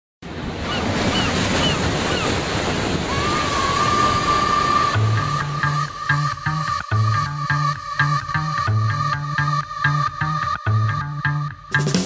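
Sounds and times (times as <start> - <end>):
ocean waves and surf: 0.2 - 12.0
electronic dance track bass line: 6.3 - 12.0.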